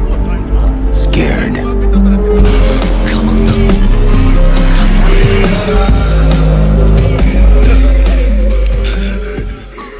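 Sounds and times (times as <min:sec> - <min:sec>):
loud music with heavy bass: 0:02.5 - 0:09.8.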